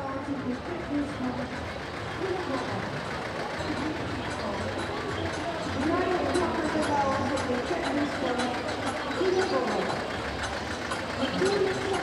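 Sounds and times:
crowd chatter: 0.0s - 12.0s
old tractor engine running: 0.0s - 12.0s.

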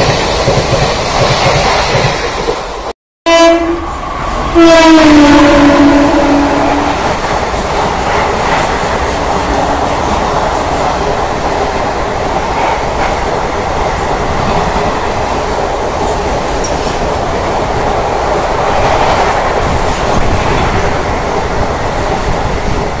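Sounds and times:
train coaches rushing past: 0.0s - 23.0s
wheels clacking over rail joints: 10.0s - 23.0s.

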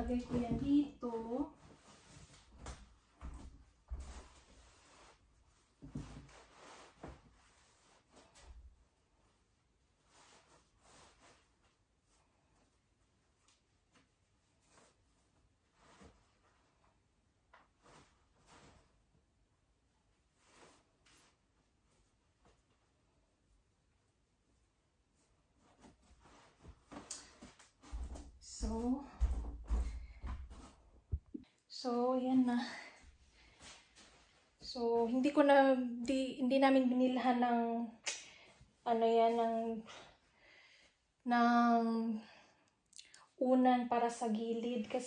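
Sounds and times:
fabric rustling: 0.0s - 19.3s, 19.9s - 31.4s, 32.7s - 35.8s.

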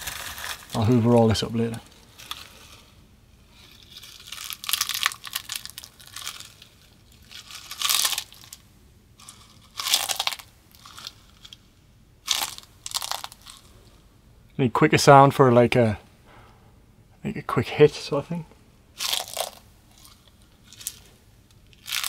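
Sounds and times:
peanut shells crushed and cracked: 0.0s - 2.9s, 3.5s - 13.8s, 19.0s - 22.0s.

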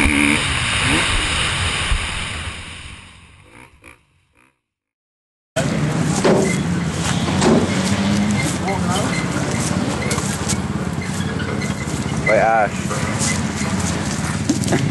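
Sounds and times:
loud background noise: 5.6s - 14.9s
people's voices: 5.6s - 14.9s.

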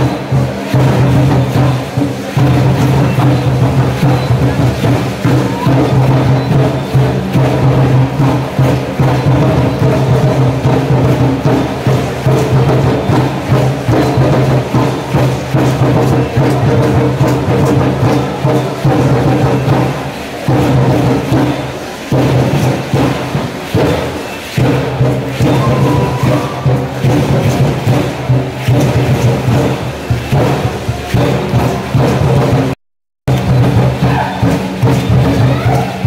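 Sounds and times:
steady drum beat: 0.0s - 36.0s.

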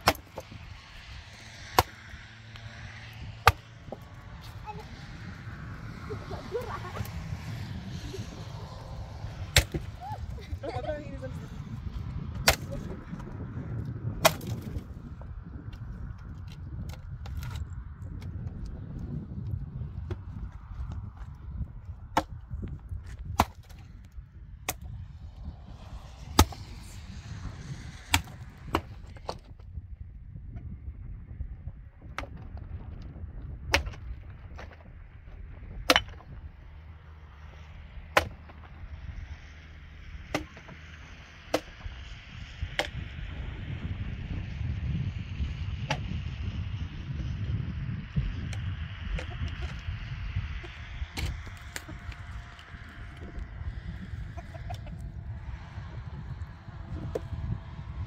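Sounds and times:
axe chopping wood: 0.0s - 0.6s, 1.6s - 2.8s, 3.4s - 4.6s, 9.4s - 10.0s, 12.3s - 13.2s, 14.2s - 14.8s, 22.1s - 23.9s, 24.6s - 24.9s, 26.2s - 26.8s, 27.9s - 29.6s, 33.7s - 34.8s, 35.8s - 36.4s, 38.1s - 38.7s, 40.2s - 40.9s, 41.5s - 41.9s, 42.7s - 43.0s, 45.9s - 46.1s, 57.0s - 57.3s
low steady rumble: 0.0s - 58.0s.

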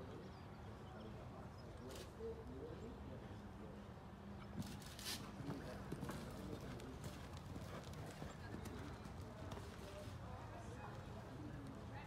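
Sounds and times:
faint voices: 0.0s - 12.0s
horse hoofbeats on dirt: 5.4s - 10.0s.

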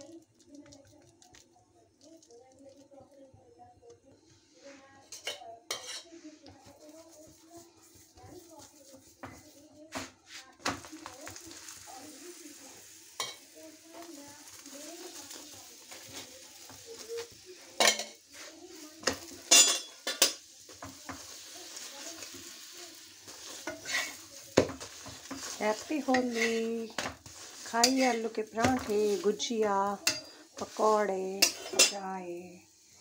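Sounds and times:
bread sizzling: 0.0s - 33.0s
metal spoon scraping on griddle: 5.0s - 11.7s, 13.2s - 32.0s.

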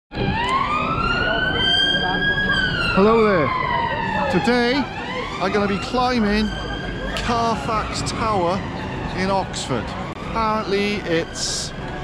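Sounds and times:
emergency siren wailing: 0.1s - 12.0s
street noise: 0.1s - 12.0s.

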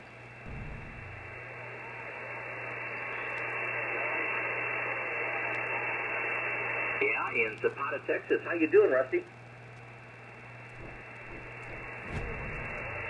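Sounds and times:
shortwave radio hiss: 0.0s - 13.0s
brief low rumble: 0.4s - 2.3s, 10.8s - 13.0s.

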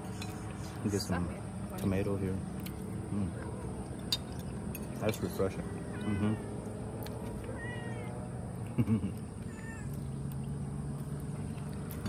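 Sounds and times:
cat meowing: 5.7s - 6.7s, 7.3s - 8.3s, 9.5s - 10.0s.

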